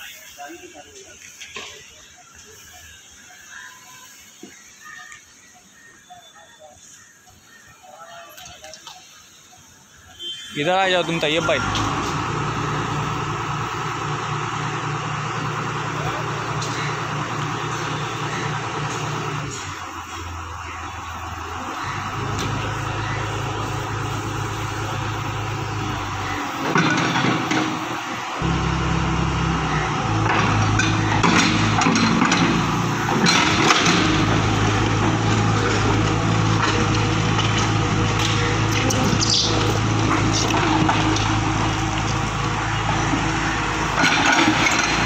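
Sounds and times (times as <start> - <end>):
excavator diesel engine running: 10.8 - 45.0.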